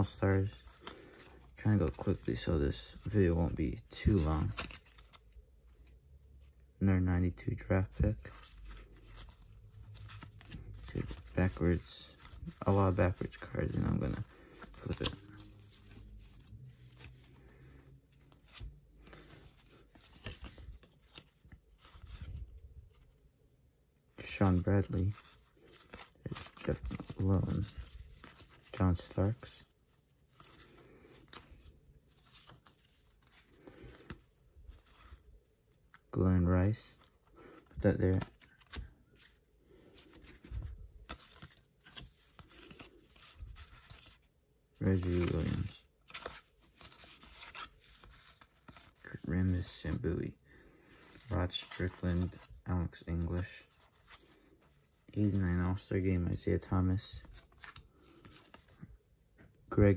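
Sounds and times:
rustling of paper cards: 0:00.0 - 0:23.3, 0:24.1 - 0:59.9
trading cards being flipped: 0:08.2 - 0:22.3, 0:24.2 - 0:29.6, 0:37.6 - 0:44.2.

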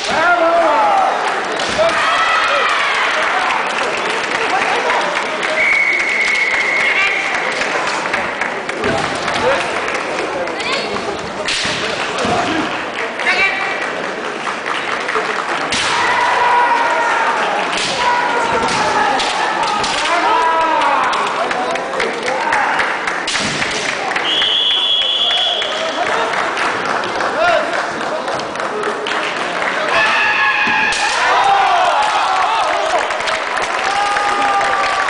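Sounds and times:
spectators clapping: 0:00.2 - 0:35.0
fighters shouting: 0:15.8 - 0:21.1
bamboo sword strikes cracking: 0:17.7 - 0:18.0, 0:23.3 - 0:23.9.

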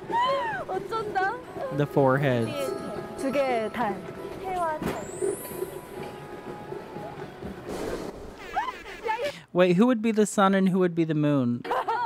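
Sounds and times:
women exclaiming: 0:00.0 - 0:01.4.

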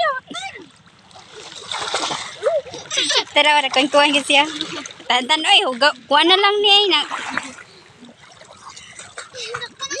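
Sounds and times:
water splashing: 0:00.0 - 0:10.0.

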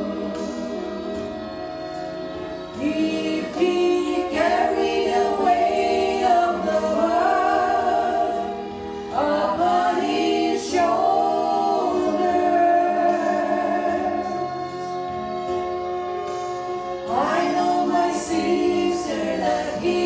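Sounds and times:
women singing gospel: 0:00.0 - 0:01.2, 0:02.7 - 0:15.2, 0:17.1 - 0:20.0.

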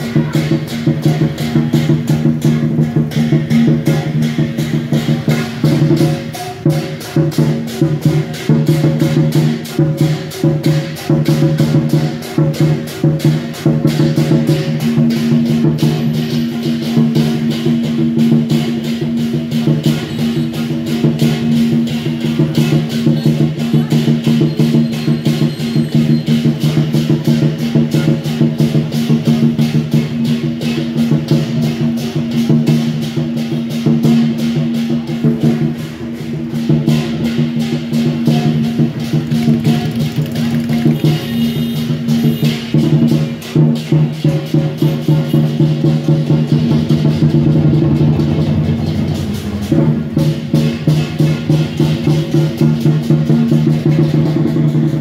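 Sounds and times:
cymbals clashing: 0:00.0 - 0:55.0
drum beaten fast: 0:00.0 - 0:55.0.

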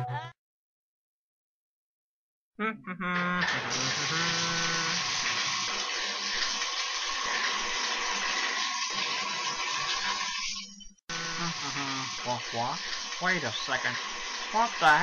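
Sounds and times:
water running into bathtub: 0:03.4 - 0:15.0.

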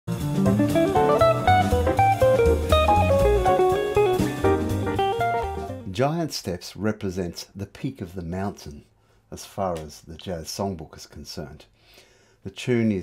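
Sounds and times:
walking bass: 0:00.1 - 0:05.8
drums: 0:00.1 - 0:05.9
jazz guitar: 0:00.1 - 0:05.9.

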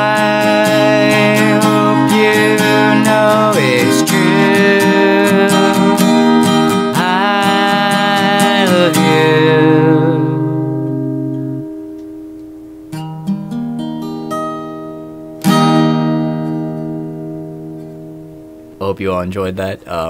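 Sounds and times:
person singing: 0:00.0 - 0:10.9
acoustic guitar: 0:00.0 - 0:20.0.

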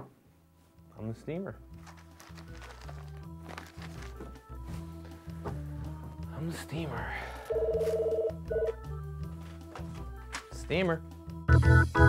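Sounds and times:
background music: 0:00.0 - 0:12.0
telephone ringing: 0:07.5 - 0:08.8.

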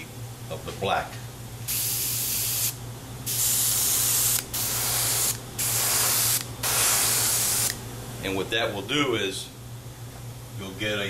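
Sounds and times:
airbrush hissing: 0:01.7 - 0:07.8.

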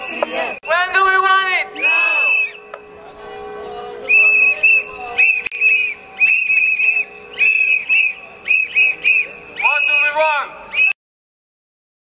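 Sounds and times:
shrill whistle blasts: 0:00.0 - 0:02.8, 0:04.0 - 0:11.0.

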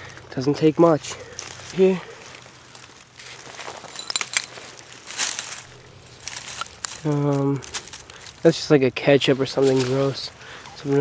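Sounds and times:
hands digging through soil and leaves: 0:00.0 - 0:11.0.

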